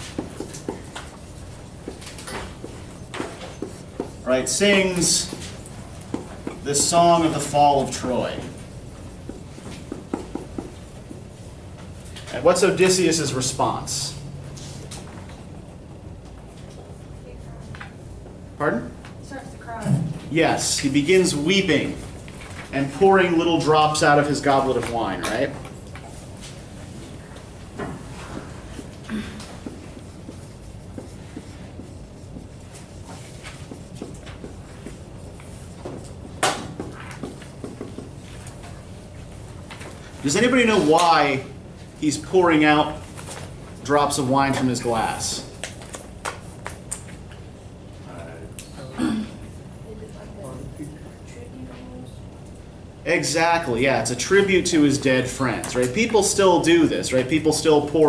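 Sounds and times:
marker writing on whiteboard: 0:00.0 - 0:11.8, 0:24.1 - 0:39.4
low room hum: 0:00.0 - 0:58.0.

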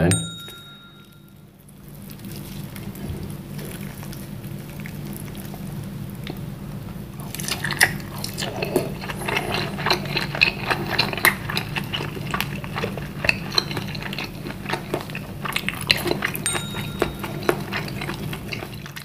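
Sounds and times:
steady low hum: 0:00.0 - 0:19.0
wet chewing clicks and smacks: 0:01.8 - 0:19.0.

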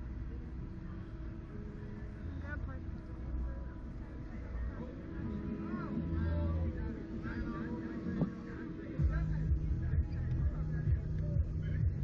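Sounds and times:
faint distant voices: 0:00.0 - 0:12.0
low rumble and hum: 0:00.0 - 0:12.0.

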